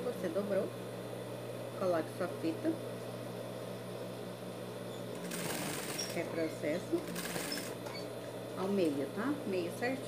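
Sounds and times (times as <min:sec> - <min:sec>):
sewing machine stitching: 0:05.2 - 0:06.2, 0:07.0 - 0:07.8.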